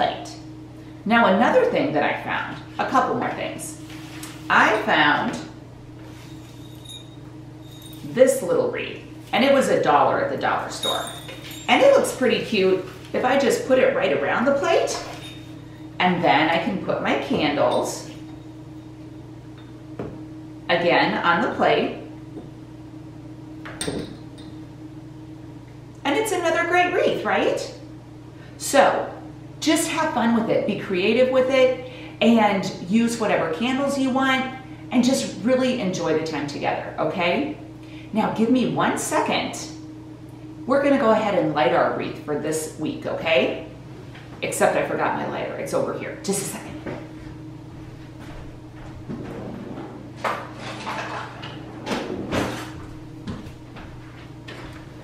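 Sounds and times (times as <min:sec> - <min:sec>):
steady low hum: 0:00.0 - 0:55.0
glass holders clinking on plate: 0:23.7 - 0:24.5.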